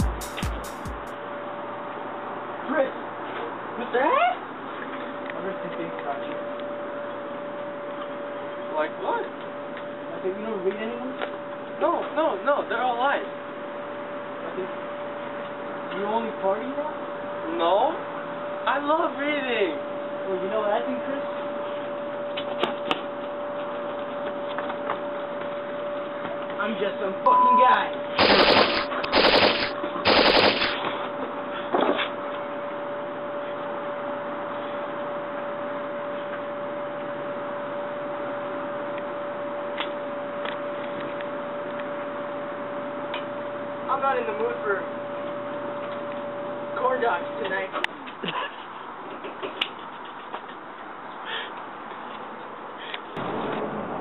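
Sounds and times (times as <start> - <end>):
machine-gun fire bursts: 28.2 - 30.9.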